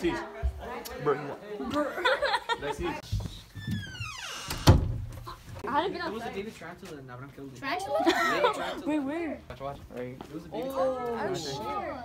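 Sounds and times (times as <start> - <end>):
door squealing: 3.6 - 5.4
loud door thud: 3.7 - 5.2.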